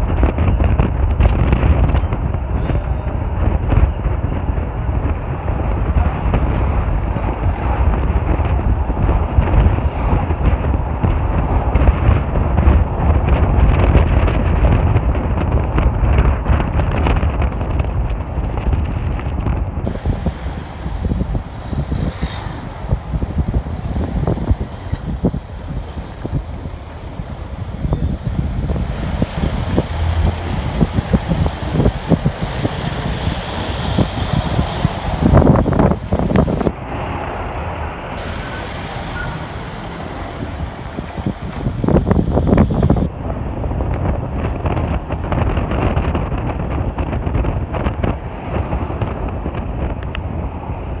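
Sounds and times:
engine and tyres rumbling: 0.0s - 51.0s
wind buffeting microphone: 0.0s - 51.0s.

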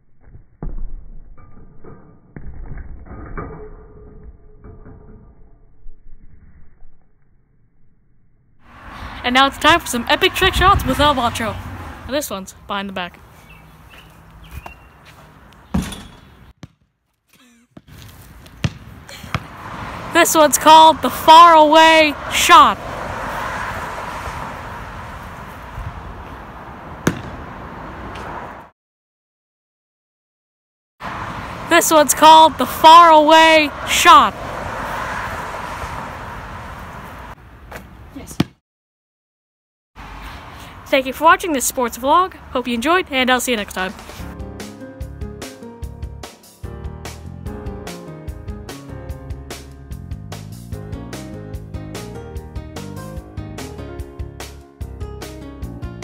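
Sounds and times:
outdoor background noise: 0.0s - 28.7s, 31.0s - 38.6s, 40.0s - 44.4s
ball striking hoop with deep thuds: 15.7s - 16.9s, 17.7s - 19.6s, 27.0s - 27.5s, 38.3s - 38.6s.

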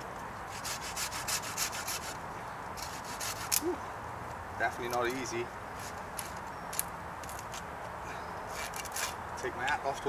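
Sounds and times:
hand saw cutting wood: 0.5s - 2.2s, 2.8s - 3.6s, 8.5s - 9.2s.

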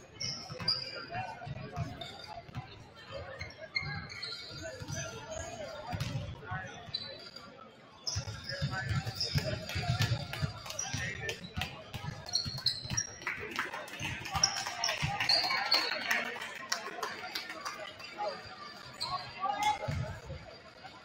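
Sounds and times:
voices chattering: 0.0s - 21.0s
shoe squeaks: 3.4s - 5.5s, 8.0s - 11.1s, 12.3s - 13.2s.

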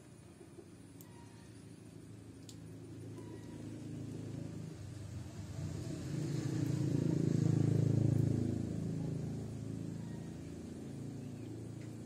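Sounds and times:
low rumble with steady hum: 0.0s - 12.0s.

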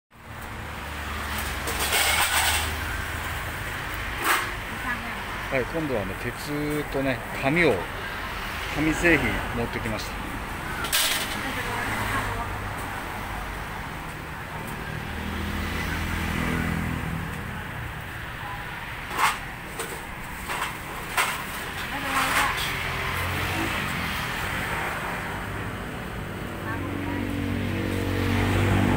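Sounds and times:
vehicle engine humming: 0.2s - 28.9s.

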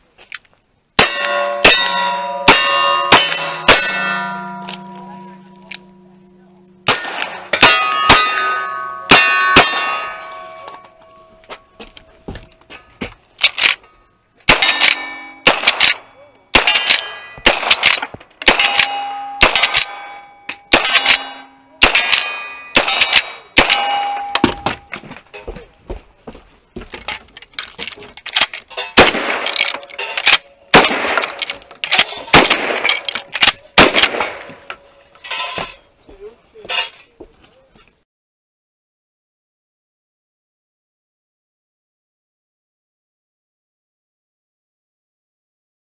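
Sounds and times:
steel targets ringing clang: 1.0s - 12.2s, 14.5s - 25.5s, 28.7s - 35.9s
gunshots: 6.8s - 10.3s, 14.5s - 20.1s, 20.7s - 24.8s, 29.0s - 34.6s.

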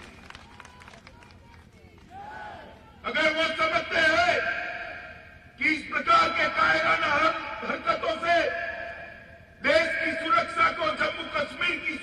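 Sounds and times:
public address echo: 1.2s - 12.0s.

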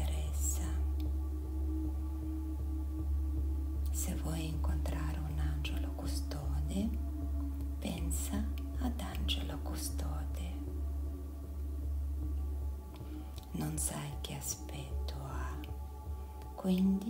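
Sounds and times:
woman whispering: 0.0s - 0.9s, 7.8s - 10.7s, 13.5s - 15.8s
steady low drone: 0.0s - 17.0s.

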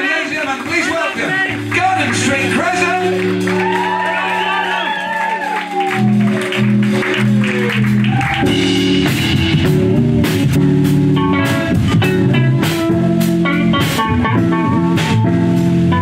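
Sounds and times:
drum kit: 0.0s - 16.0s
electric guitars: 1.2s - 16.0s.

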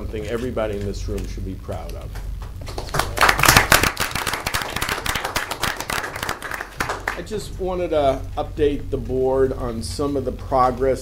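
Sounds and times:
people applauding: 2.6s - 7.3s.

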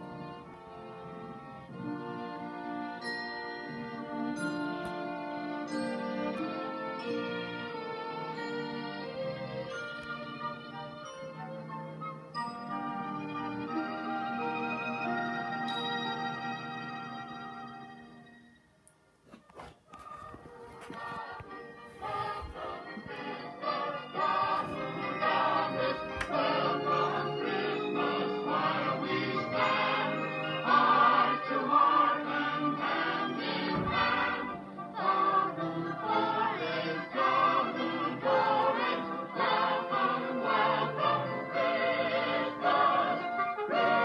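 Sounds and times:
choir singing christmas music: 0.0s - 18.4s, 20.0s - 44.0s
orchestral accompaniment: 0.0s - 18.7s, 20.9s - 44.0s.

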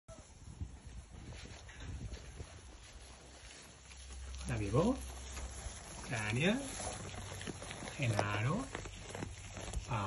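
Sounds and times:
animals chewing hay: 0.4s - 10.0s
hay rustling: 0.4s - 10.0s.

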